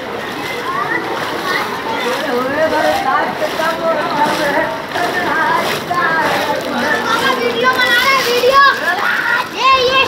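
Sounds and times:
children shouting and chattering: 0.0s - 10.0s.

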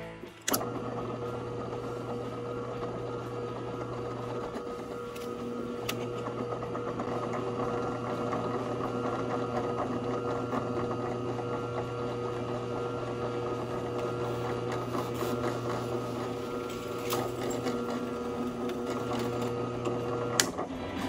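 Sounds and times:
drill press motor hum: 0.3s - 21.0s.

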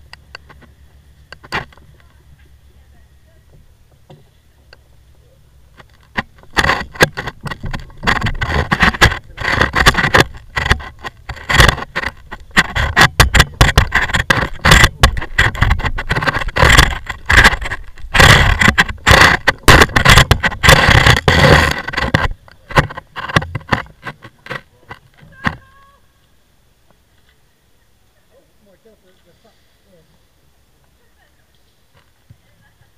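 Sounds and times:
knocking and scraping: 0.0s - 2.8s, 3.4s - 25.9s.

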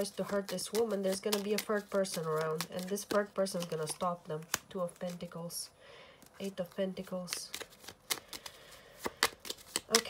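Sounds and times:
playing cards shuffling: 0.0s - 5.6s, 6.2s - 10.0s.

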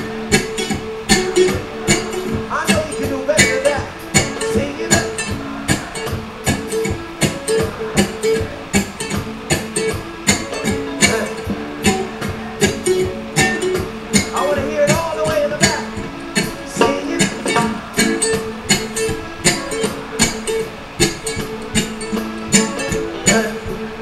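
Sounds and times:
ukulele strummed reggae rhythm: 0.0s - 24.0s.

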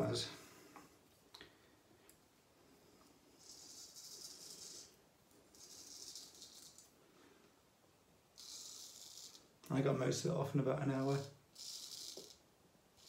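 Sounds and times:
razor scraping stubble: 3.4s - 6.9s, 8.4s - 9.5s, 11.0s - 12.4s.

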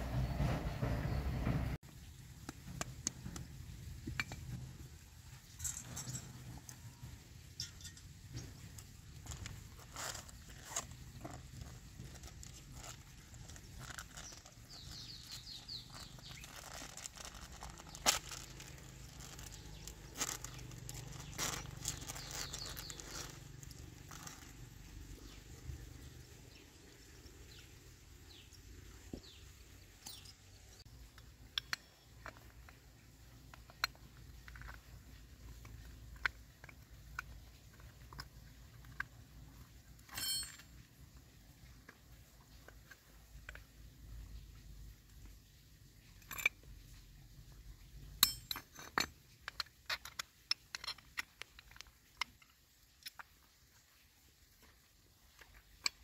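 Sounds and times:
small metal parts clinking: 4.0s - 26.1s, 30.0s - 41.2s, 46.0s - 47.0s, 48.0s - 53.5s.

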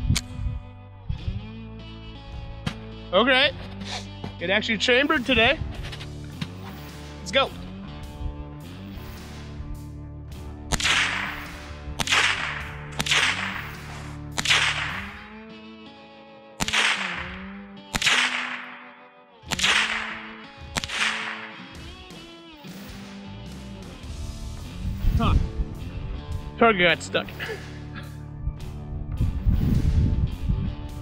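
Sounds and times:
rifle shots: 10.7s - 15.3s, 16.6s - 22.0s.

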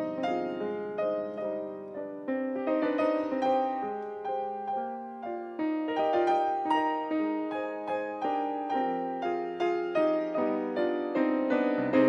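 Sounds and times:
grand piano playing: 0.0s - 12.0s.

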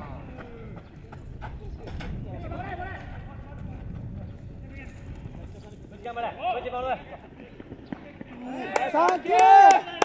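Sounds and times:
running footsteps on dirt: 0.0s - 10.0s.

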